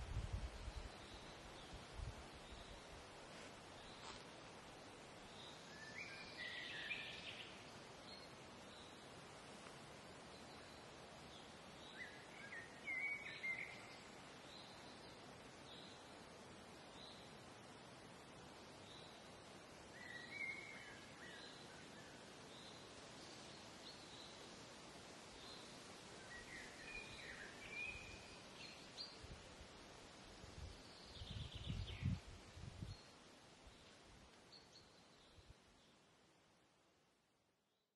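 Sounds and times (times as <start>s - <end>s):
faint steady hiss: 0.0s - 37.9s.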